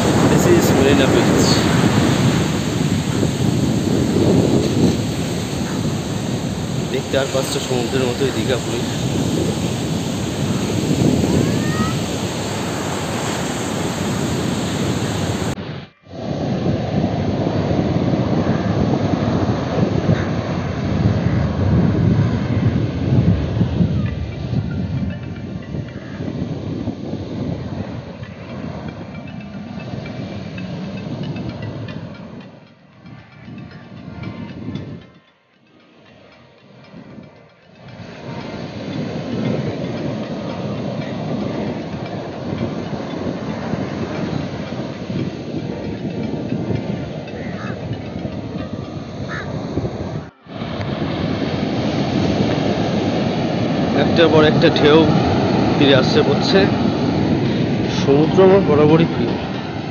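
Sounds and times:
surf breaking on beach: 0.0s - 24.8s, 37.0s - 59.9s.

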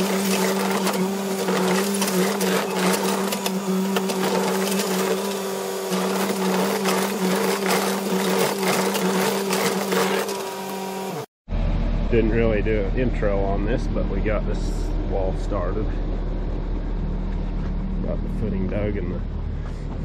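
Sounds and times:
bucket clanks and scrapes: 0.0s - 10.5s
diesel engine droning: 0.0s - 20.0s.

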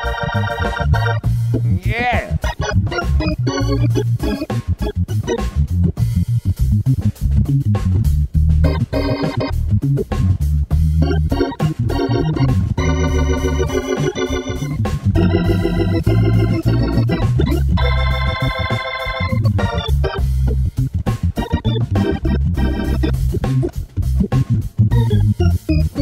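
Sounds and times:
organ playing chords and bass: 0.0s - 26.0s.

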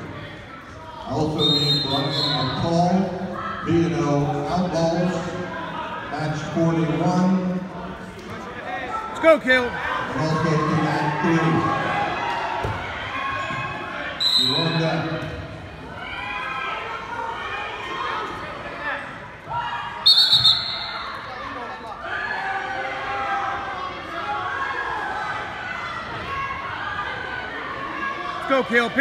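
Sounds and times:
many voices in echoing gym: 0.0s - 29.0s
referee's whistle blasts: 1.3s - 2.7s, 14.2s - 15.0s, 20.0s - 21.2s.

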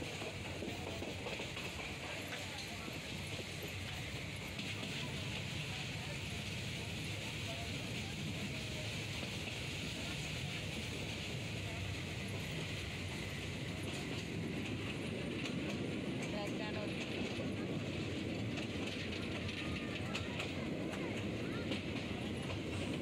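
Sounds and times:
train wheels rumbling: 0.0s - 23.0s.

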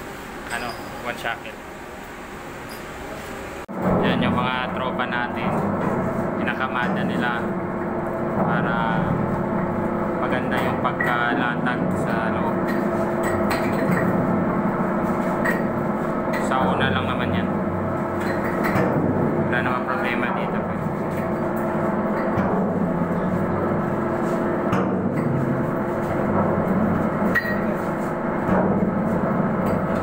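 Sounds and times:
machinery hum: 0.0s - 30.0s
steady background noise: 0.0s - 30.0s
man speaking: 0.5s - 1.6s, 3.9s - 5.7s, 6.4s - 7.5s, 8.4s - 9.3s, 10.2s - 12.6s, 16.4s - 17.6s, 19.5s - 21.0s.

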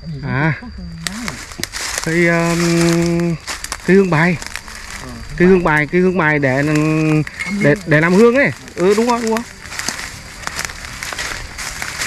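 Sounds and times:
twigs snapping underfoot: 1.0s - 12.0s
footsteps crunching through leaves: 1.2s - 12.0s.

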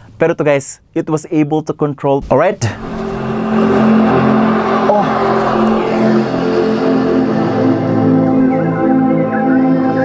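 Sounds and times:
ambient music of low chords: 2.8s - 10.0s.

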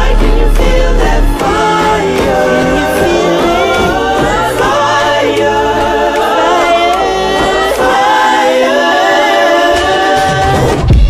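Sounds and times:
choral singing: 0.0s - 11.0s.

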